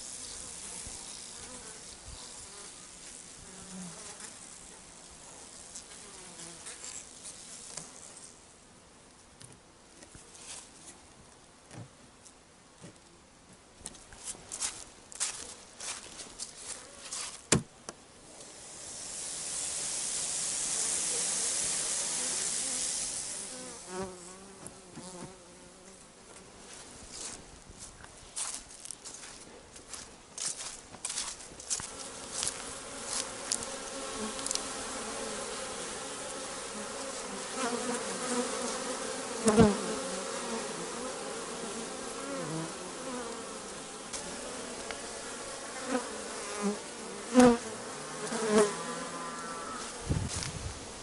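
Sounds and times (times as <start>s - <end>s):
rush of hissing noise: 18.3s - 23.9s
bees buzzing: 18.4s - 25.9s, 30.4s - 51.0s.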